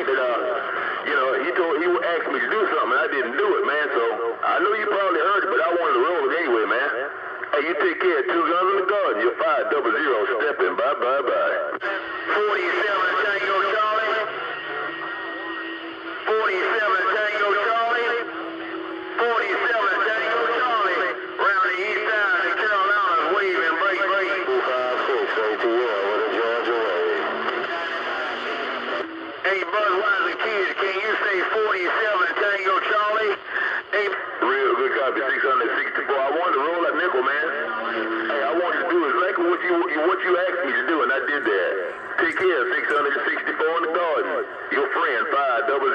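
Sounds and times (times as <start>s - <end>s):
voices over radio speaker: 0.0s - 45.9s.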